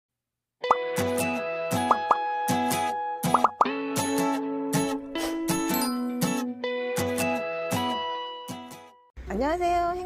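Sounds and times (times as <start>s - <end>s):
cartoon pop swoop effects: 1.9s - 2.2s, 3.3s - 3.8s
cheerful jingle music: 5.2s - 6.6s.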